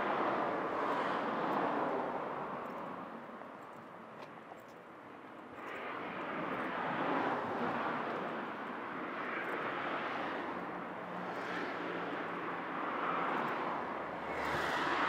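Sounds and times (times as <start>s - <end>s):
cars driving past on asphalt: 0.0s - 15.0s.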